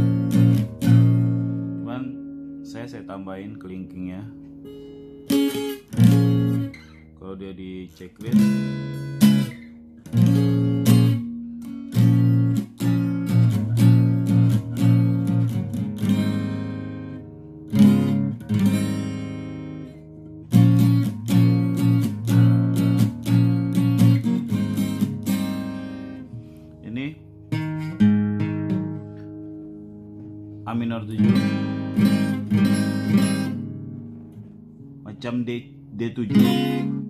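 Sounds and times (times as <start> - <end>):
acoustic guitar strumming chords: 0.0 - 37.0.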